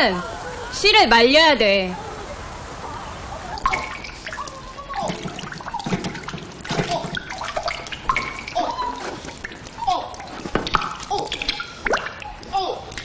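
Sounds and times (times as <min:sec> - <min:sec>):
water dripping into water: 0:03.5 - 0:13.0.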